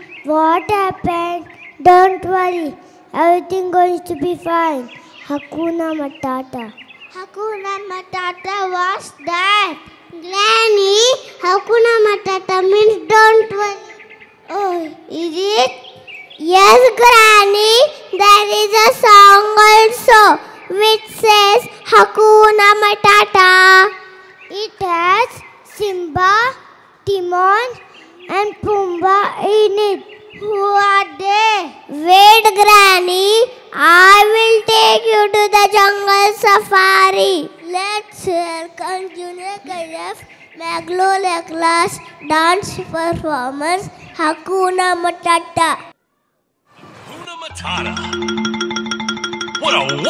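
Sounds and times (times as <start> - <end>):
child singing into a microphone: 40.7 - 44.8.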